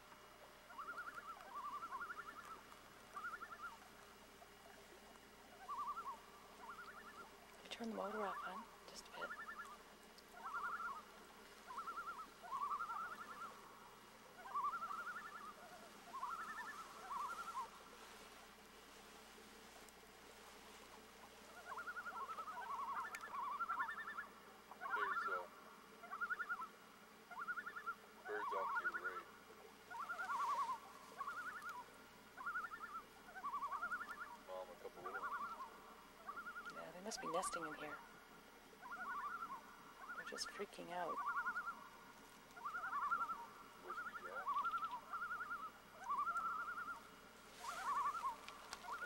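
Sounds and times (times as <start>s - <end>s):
birds alarm calling: 0.6s - 3.9s, 5.5s - 18.0s, 21.0s - 38.0s, 38.8s - 49.0s.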